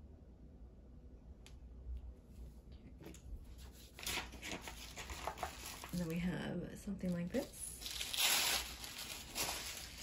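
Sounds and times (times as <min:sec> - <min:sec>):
paper rustling: 0:03.5 - 0:06.2, 0:07.4 - 0:10.0.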